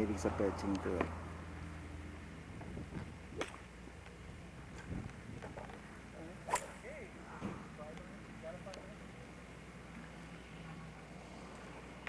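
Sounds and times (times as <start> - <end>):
golf clubs striking balls: 2.6 - 8.1.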